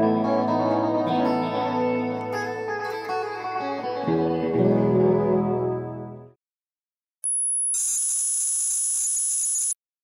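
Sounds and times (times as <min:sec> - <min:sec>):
screechy digital data signal: 0:07.2 - 0:09.8.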